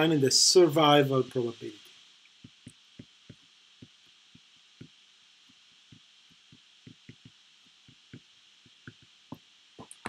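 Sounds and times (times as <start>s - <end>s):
faint hiss: 0.0s - 10.0s
pen tapping while writing: 2.4s - 5.0s, 5.9s - 10.0s.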